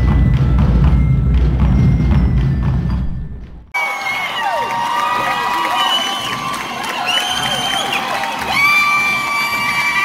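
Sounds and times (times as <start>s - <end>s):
band music with steady drum beat: 0.0s - 3.5s.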